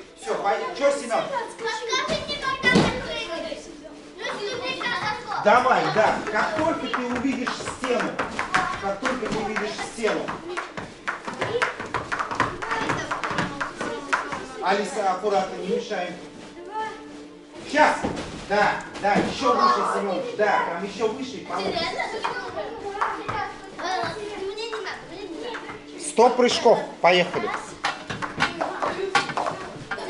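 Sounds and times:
children's voices: 0.0s - 7.2s, 8.3s - 14.7s, 21.4s - 26.1s, 27.2s - 30.0s
jump ropes slapping floor mats: 4.8s - 14.6s, 21.5s - 25.8s, 27.2s - 30.0s
feet landing on mats: 17.1s - 19.7s.

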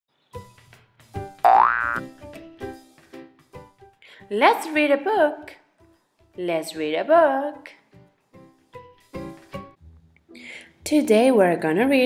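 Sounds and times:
rising boing sound effect: 1.5s - 2.0s.

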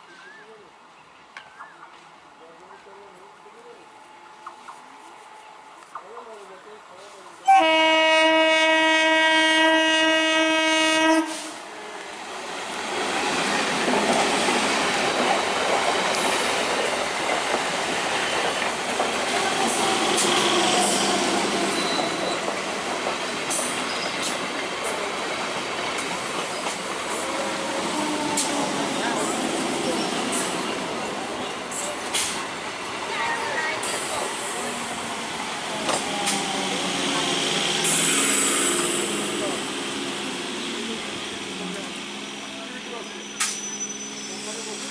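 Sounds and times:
train wheel and rail noise: 0.0s - 44.9s
train horn: 7.4s - 11.7s.

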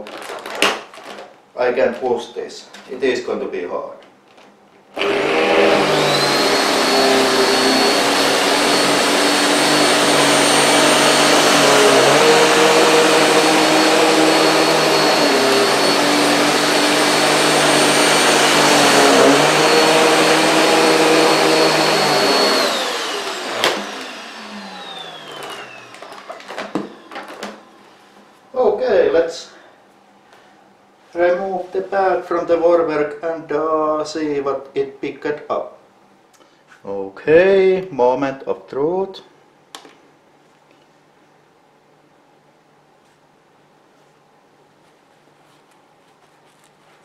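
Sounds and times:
vacuum cleaner motor whine: 5.0s - 28.4s.

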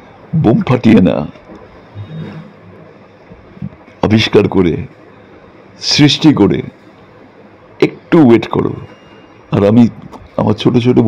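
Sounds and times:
faint low vocal murmur: 1.9s - 3.0s.

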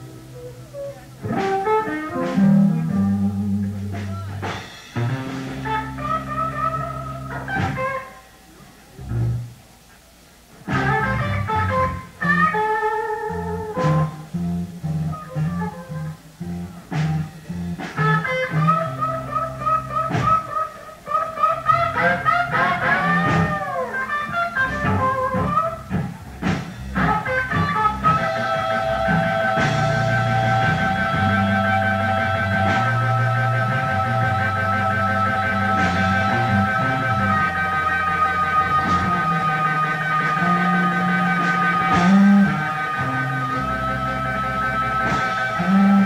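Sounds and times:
bass line: 0.0s - 8.2s, 9.0s - 9.7s, 10.5s - 46.0s
electric blues guitar solo: 0.0s - 9.6s, 10.5s - 46.0s
band playing: 0.0s - 46.0s
drums: 0.0s - 46.0s.

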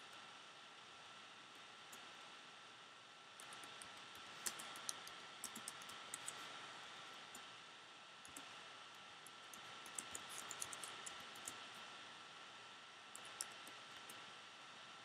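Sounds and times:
steady hiss: 0.0s - 15.0s
faint computer clicks: 3.4s - 6.5s, 8.2s - 11.9s, 13.1s - 14.2s.

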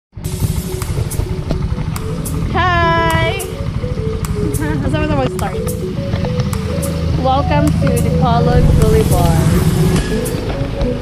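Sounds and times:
motorcycle engine: 0.1s - 11.0s
road noise: 0.1s - 11.0s
wind buffeting microphone: 0.9s - 11.0s.

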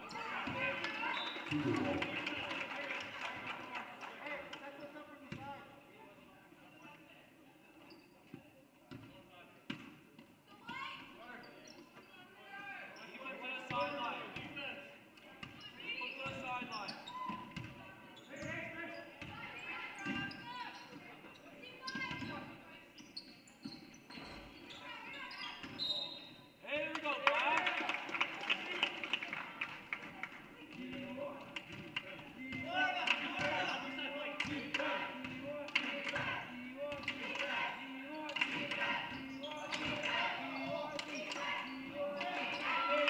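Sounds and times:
voices calling out: 0.8s - 3.0s, 32.4s - 43.0s.

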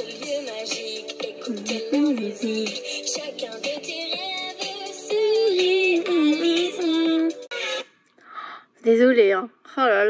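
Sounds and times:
woman singing pop song: 0.0s - 7.5s.

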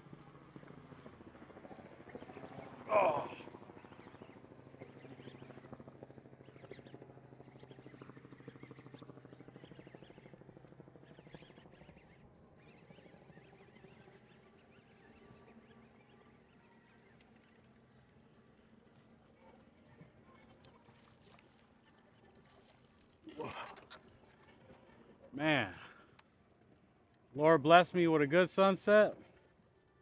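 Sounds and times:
fishing reel ticking: 6.4s - 19.8s.

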